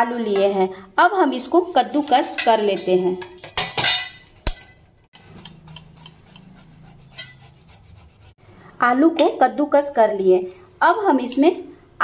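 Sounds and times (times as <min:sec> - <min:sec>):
potatoes rasping on a grater: 0:05.2 - 0:08.4.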